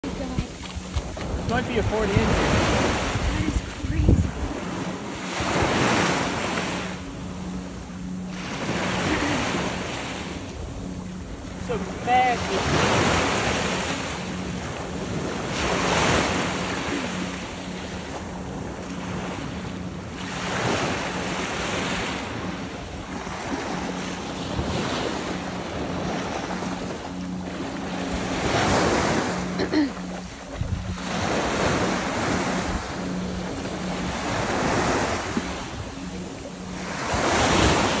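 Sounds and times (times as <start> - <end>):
surf waves breaking on beach: 0.0 - 38.0.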